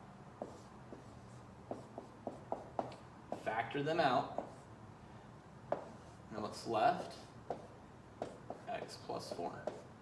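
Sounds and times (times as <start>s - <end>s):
marker writing on a whiteboard: 0.4s - 4.7s, 5.7s - 10.0s.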